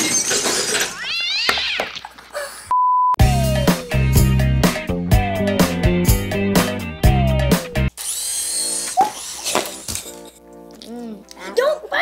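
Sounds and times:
clattering noise: 0.0 - 2.1
children shrieking: 1.0 - 1.9.

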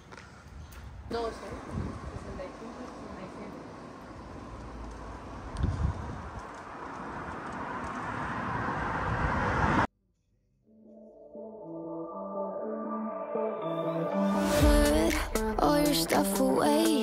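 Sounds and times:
street ambience: 0.0 - 9.9
music: 10.4 - 17.0.

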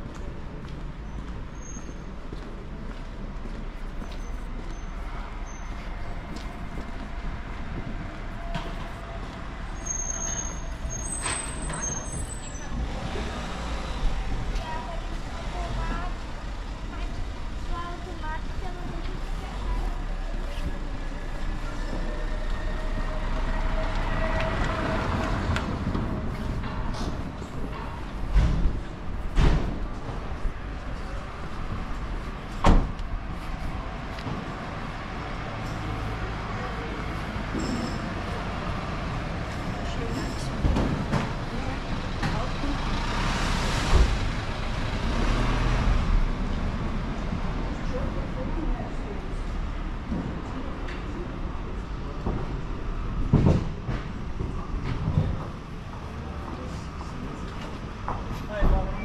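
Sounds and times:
voices of passers-by: 0.0 - 59.0.

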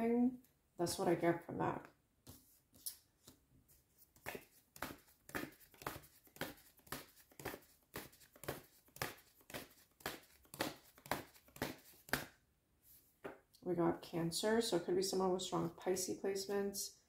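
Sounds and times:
paper cards being shuffled: 2.3 - 12.3.

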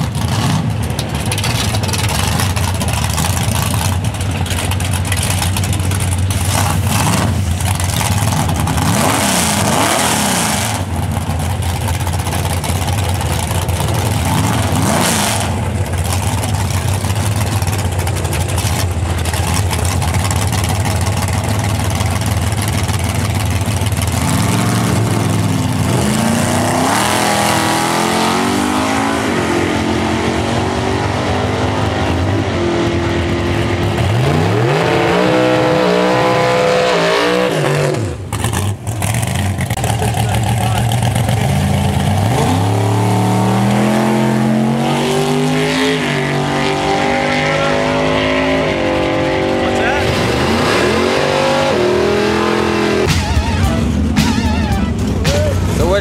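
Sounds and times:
drag racing car accelerating: 0.0 - 56.0.

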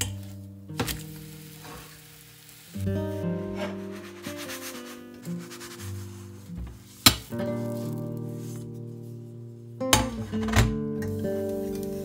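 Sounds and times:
crepe rasping on frying pan: 0.8 - 8.6
music with held notes: 2.7 - 12.0.

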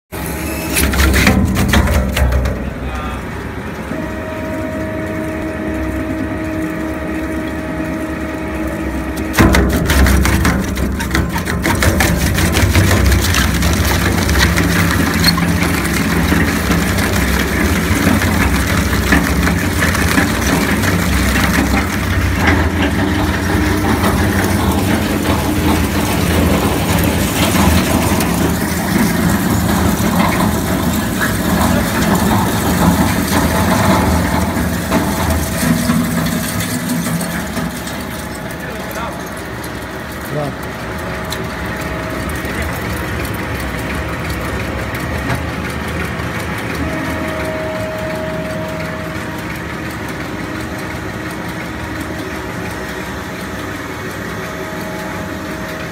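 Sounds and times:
shredder hum: 0.1 - 55.9
shredder crunching and cracking: 0.3 - 2.9, 9.2 - 47.3.

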